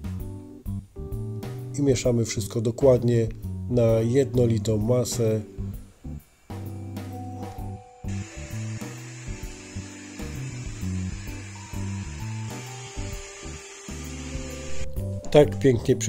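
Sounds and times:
background guitar music: 0.0 - 16.0
electric hand mixer beating batter: 8.1 - 15.0.

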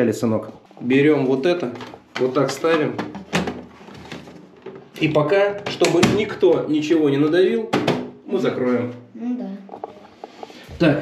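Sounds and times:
plastic cover knocking: 1.7 - 5.0, 7.7 - 8.2.

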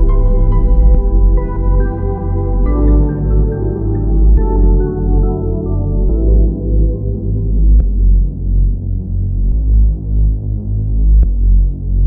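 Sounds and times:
deep pulsing bass: 0.0 - 12.0
low synth chords: 0.0 - 12.0.

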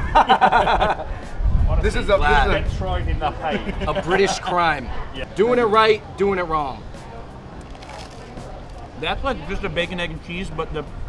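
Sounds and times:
street noise: 0.0 - 11.0
faint voices: 1.0 - 11.0.

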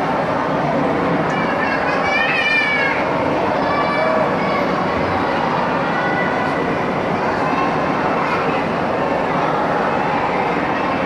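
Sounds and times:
crowd din at ice rink: 0.0 - 11.0.

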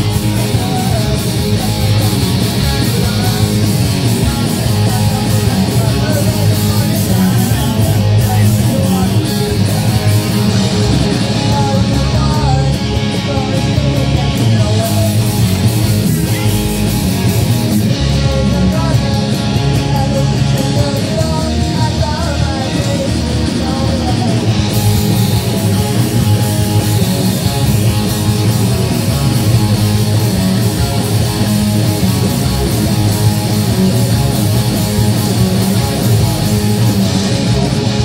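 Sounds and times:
bass guitar: 0.0 - 38.0
drum kit: 0.0 - 38.0
electric guitars: 0.0 - 38.0.

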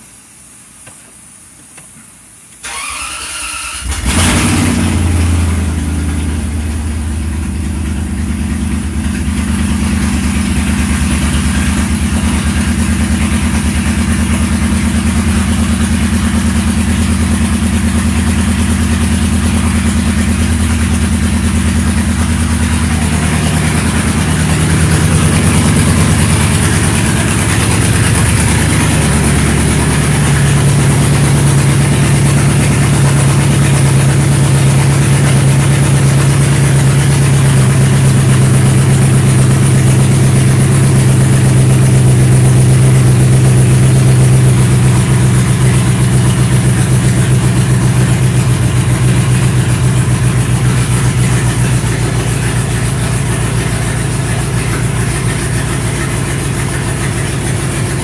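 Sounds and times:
car engine cranking and idling: 2.6 - 58.0.

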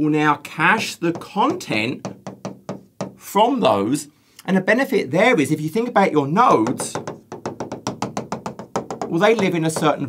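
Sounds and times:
stylus tapping on touchscreen: 1.0 - 3.2, 6.6 - 10.0.

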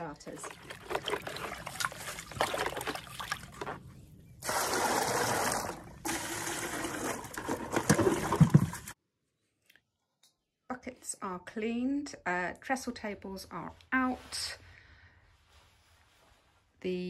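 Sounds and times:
brush scrubbing plastic bucket: 0.0 - 9.0
water sloshing: 0.0 - 9.0
knocks on bucket: 7.6 - 8.9.

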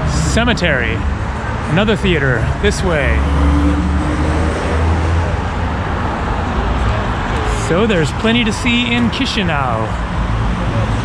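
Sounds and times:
road noise: 0.0 - 11.0
vehicle engine rumble: 0.0 - 11.0.

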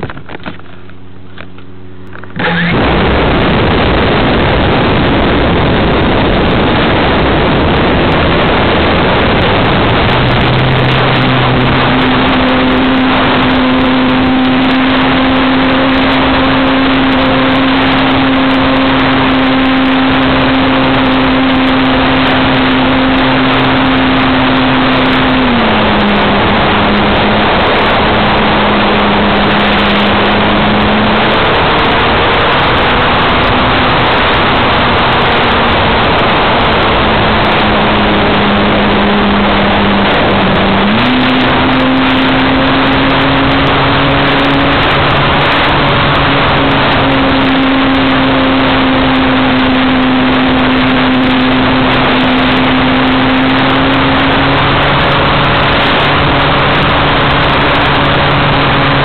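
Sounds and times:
electric motor and propeller hum: 0.0 - 59.0
wind rush: 0.0 - 59.0.

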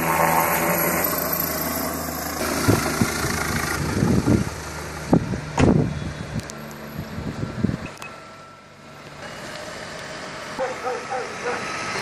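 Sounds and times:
helicopter turbine and rotor: 0.0 - 8.6.

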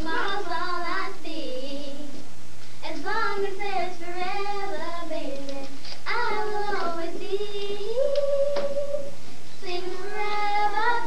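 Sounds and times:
children singing: 6.1 - 11.0.

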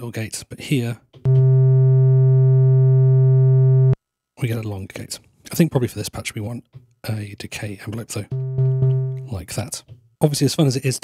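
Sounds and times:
low synthesizer note: 1.3 - 4.0, 8.3 - 9.4.

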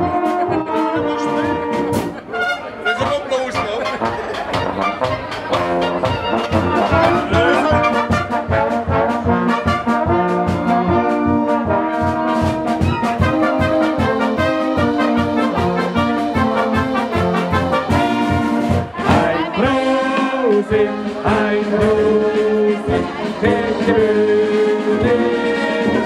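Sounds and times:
brass band playing: 0.0 - 26.0
steady drum beat: 0.0 - 26.0.

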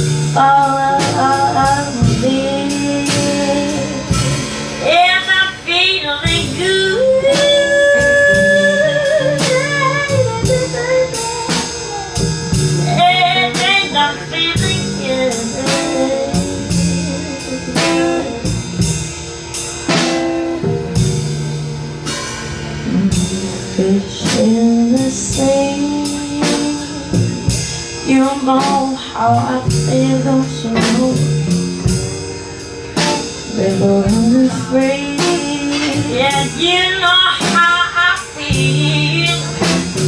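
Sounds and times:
bass: 0.0 - 40.0
drum kit steady beat: 0.0 - 40.0
guitar: 0.0 - 40.0
woman singing with vibrato: 0.2 - 18.5, 22.9 - 31.7, 33.5 - 40.0.

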